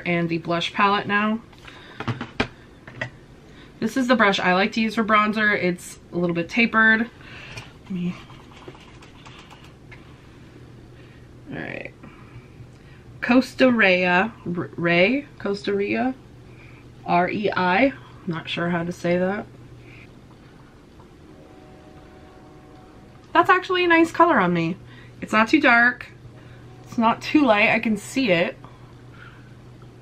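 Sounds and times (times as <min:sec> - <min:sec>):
faint low hum: 0:00.0 - 0:30.0.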